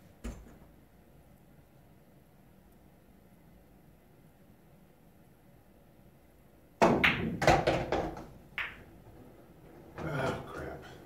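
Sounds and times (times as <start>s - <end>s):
cue striking cue ball: 6.8s - 10.4s
pool balls clacking and knocking: 6.8s - 11.0s.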